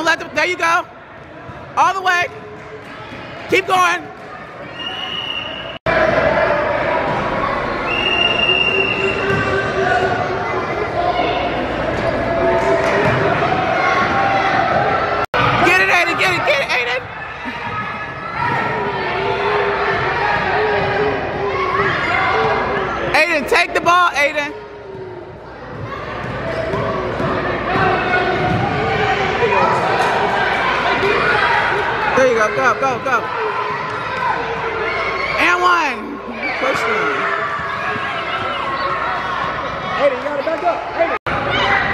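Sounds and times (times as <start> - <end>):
people chattering and shouting: 0.0 - 41.9.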